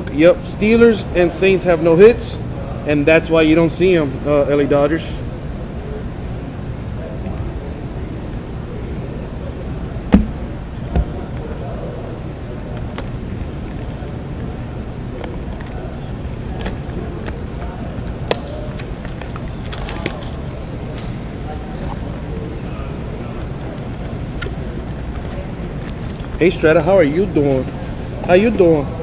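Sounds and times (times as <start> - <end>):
low background noise: 0.0 - 29.0
knocks on cardboard: 10.1 - 10.4
plastic shrink wrap crinkling: 12.9 - 21.1.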